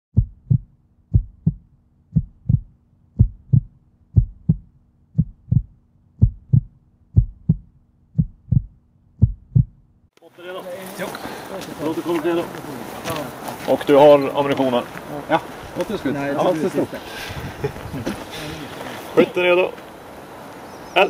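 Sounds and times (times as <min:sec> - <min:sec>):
heartbeat double thumps: 0:00.1 - 0:10.0.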